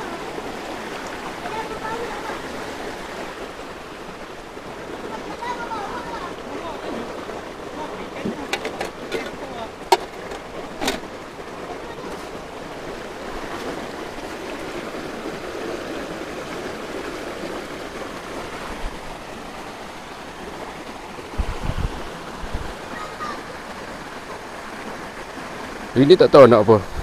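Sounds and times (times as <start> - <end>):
stream flowing over rocks: 0.0 - 27.0.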